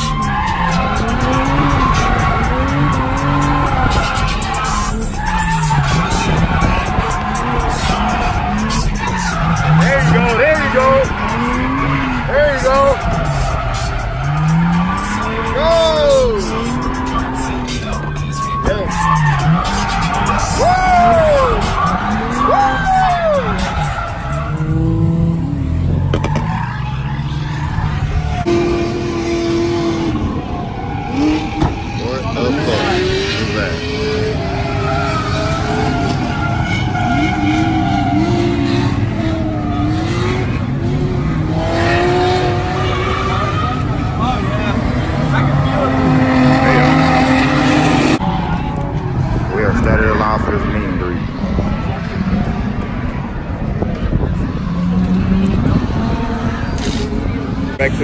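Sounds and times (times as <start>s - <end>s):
tyre squeal: 0.0s - 28.6s
car engines revving: 0.0s - 58.0s.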